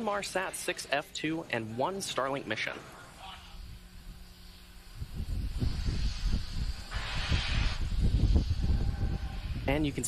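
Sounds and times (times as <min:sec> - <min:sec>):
hissing gas venting: 0:00.0 - 0:10.0.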